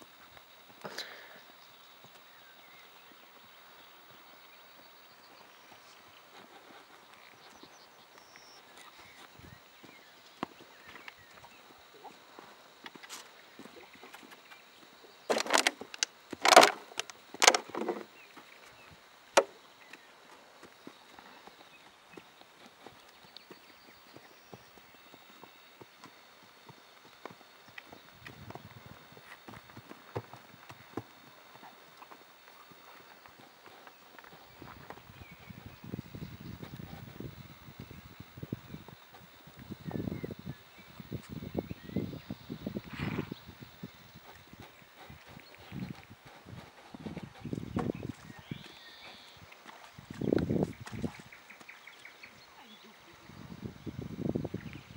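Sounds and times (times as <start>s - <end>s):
horse hooves on soft dirt: 0.0s - 54.9s.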